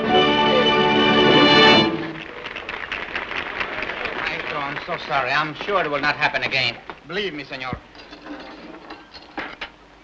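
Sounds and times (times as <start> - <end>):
film soundtrack hiss: 0.0 - 10.0
dishes and glassware clinking: 7.9 - 9.8.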